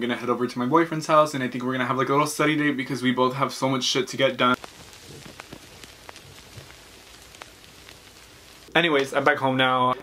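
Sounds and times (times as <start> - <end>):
steady rain through window: 0.0 - 10.0
raindrop ticks: 4.6 - 10.0.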